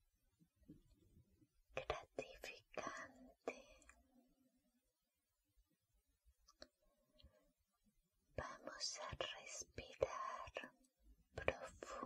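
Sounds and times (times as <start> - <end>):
woman whispering: 1.8 - 4.1, 8.4 - 12.0.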